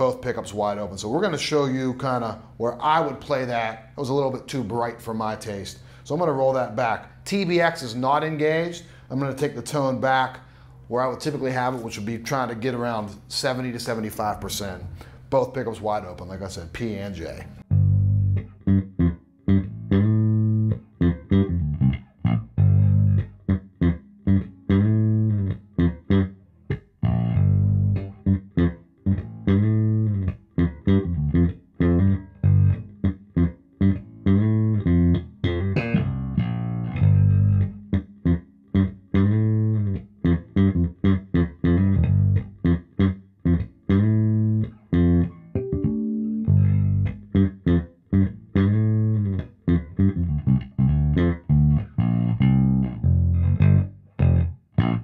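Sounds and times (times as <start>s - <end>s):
electric bass plucked line: 17.5s - 55.0s.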